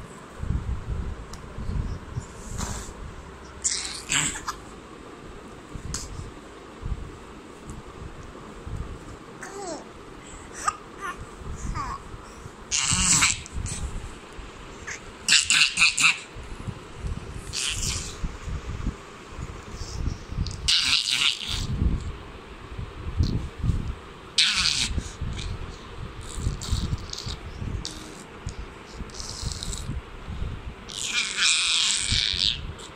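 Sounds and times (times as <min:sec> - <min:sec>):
baby babbling and giggling: 0:09.4 - 0:09.9, 0:10.5 - 0:12.1.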